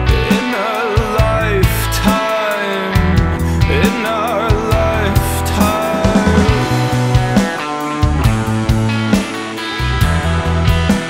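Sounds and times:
grunge rock band playing: 0.0 - 11.0.

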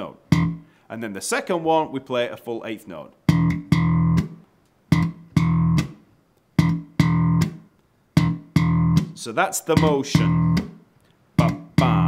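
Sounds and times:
slapped bass guitar notes: 0.0 - 0.8, 3.2 - 12.0.

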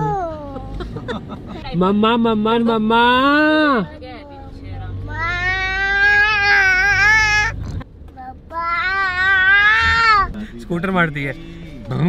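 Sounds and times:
car interior hum: 0.0 - 12.0.

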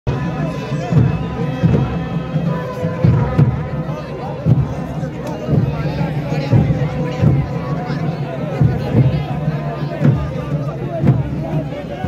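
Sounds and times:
crowd chatter: 0.1 - 12.0
drums beating heavily: 0.1 - 12.0.

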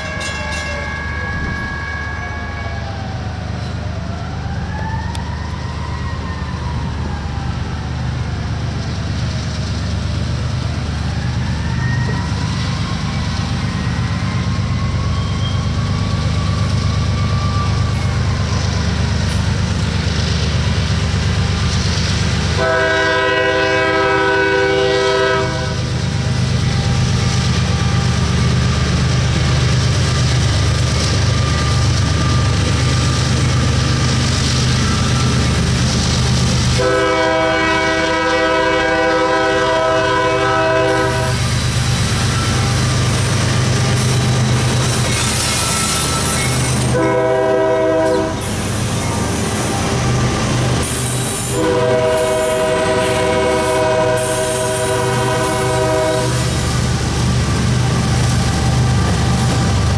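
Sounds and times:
locomotive air horn blasts: 0.0 - 2.6, 22.6 - 25.9, 36.7 - 41.4, 45.5 - 48.5, 51.0 - 56.8
rattling wheel and rail noise: 0.0 - 59.9
diesel engines droning: 1.2 - 59.9.

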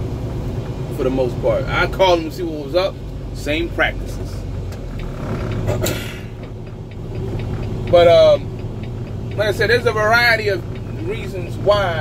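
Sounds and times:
diesel engine humming: 0.0 - 12.0.

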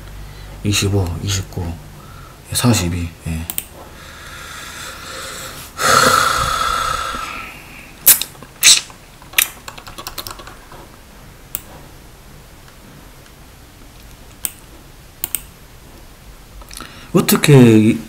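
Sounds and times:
computer keyboard clicks: 3.5 - 3.7, 9.3 - 10.6, 15.2 - 15.5
breath blown into microphone: 4.0 - 7.9.

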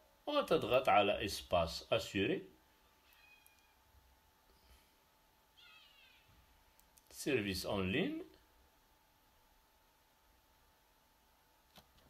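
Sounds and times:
faint high-pitched cry: 2.8 - 3.8, 5.5 - 6.4.

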